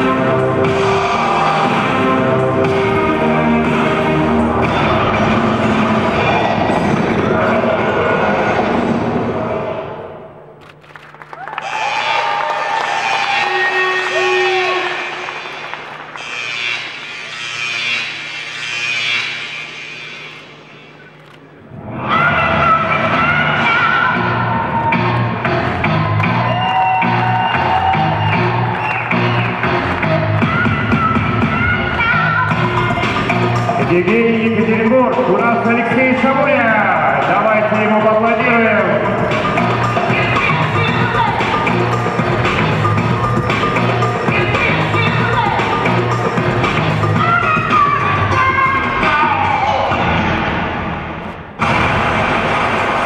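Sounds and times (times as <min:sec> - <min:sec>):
music for posing routine: 0:00.0 - 0:07.6, 0:24.1 - 0:51.6.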